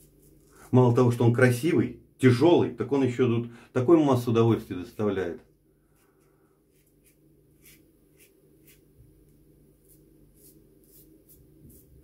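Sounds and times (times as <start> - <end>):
razor scraping stubble: 9.8 - 12.0.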